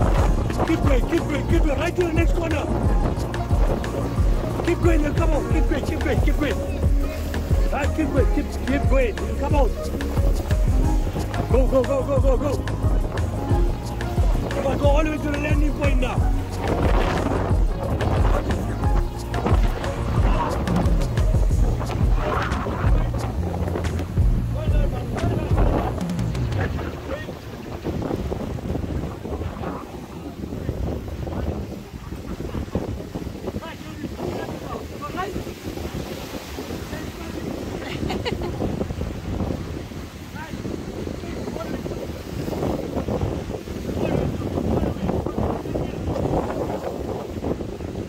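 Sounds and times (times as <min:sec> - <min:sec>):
background music with bass line: 0:00.0 - 0:27.3
surf washing against rocks: 0:00.0 - 0:48.0
wind buffeting microphone: 0:00.0 - 0:48.0.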